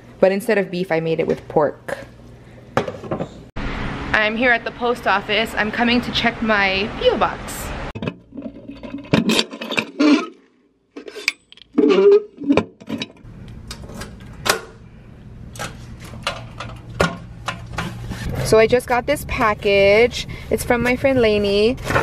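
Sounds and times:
steady low hum: 13.2 - 22.0.

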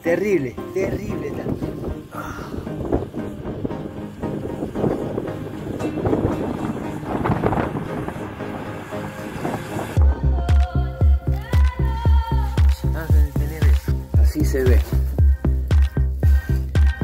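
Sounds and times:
wind buffeting microphone: 0.9 - 10.0
hip-hop music with heavy bass: 9.3 - 17.0.

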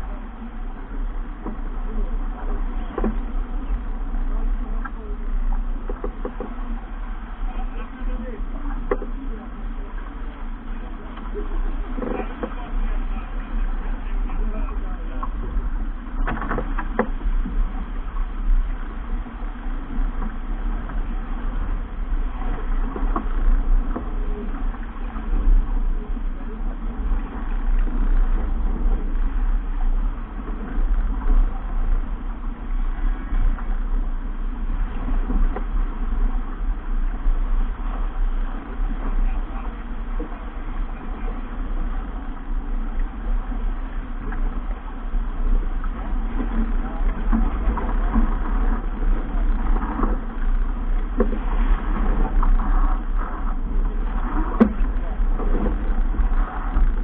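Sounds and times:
water splashing along boat hull: 0.0 - 57.0
wind buffeting microphone: 0.0 - 57.0.

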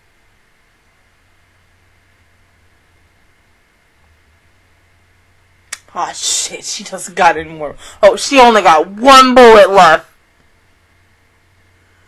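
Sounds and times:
faint steady hum: 0.0 - 12.0
woman speaking: 5.8 - 10.1.

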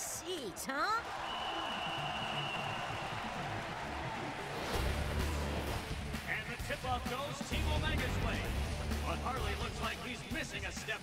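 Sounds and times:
stadium crowd cheering and applauding: 0.0 - 9.3.

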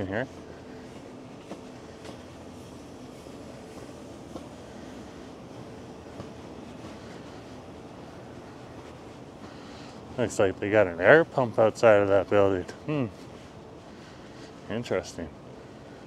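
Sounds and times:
air pump mechanical hum: 0.0 - 16.0
street ambience: 0.0 - 16.0.

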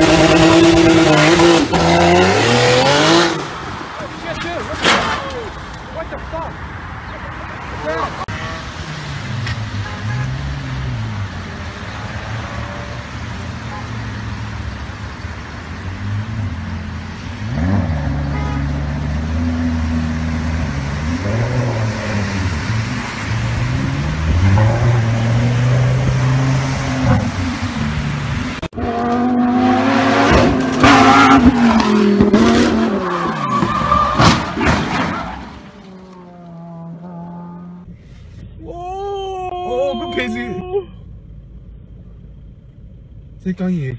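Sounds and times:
car engine revving: 0.0 - 3.7, 7.6 - 34.6
tire squeal: 32.6 - 37.8.

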